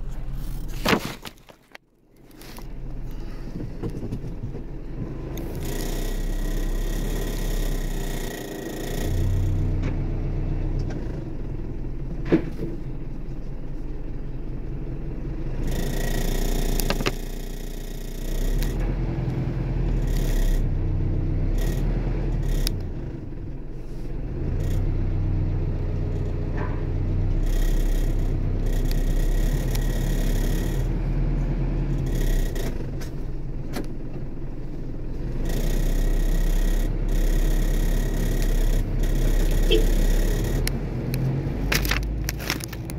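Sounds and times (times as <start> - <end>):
vehicle engines rumbling: 0.0 - 42.9.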